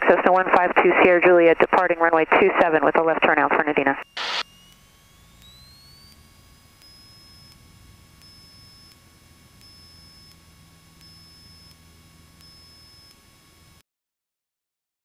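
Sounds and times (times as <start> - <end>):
low engine drone: 3.6 - 13.8
electrical whine rising: 3.9 - 13.8.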